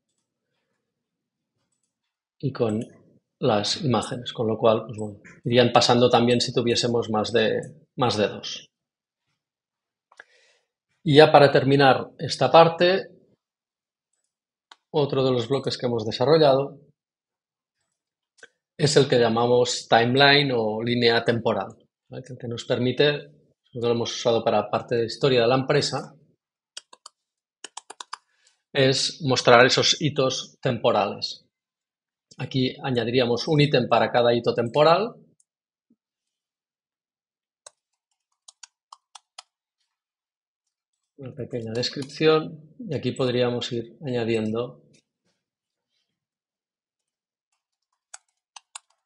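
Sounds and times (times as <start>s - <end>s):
man speaking: 2.4s - 8.6s, 11.1s - 13.0s, 15.0s - 16.7s, 18.8s - 23.2s, 23.8s - 26.1s, 28.8s - 31.4s, 32.4s - 35.1s, 41.2s - 44.7s
computer mouse click: 26.8s - 28.3s, 47.5s - 49.0s.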